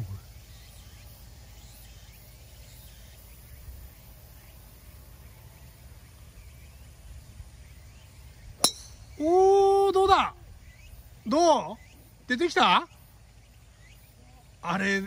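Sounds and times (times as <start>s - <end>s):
faint outdoor background noise: 0.0s - 15.0s
golf club striking ball: 8.6s - 9.3s.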